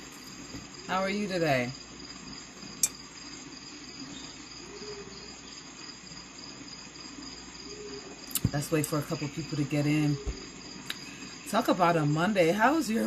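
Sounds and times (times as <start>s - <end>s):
crickets trilling: 0.0s - 13.0s.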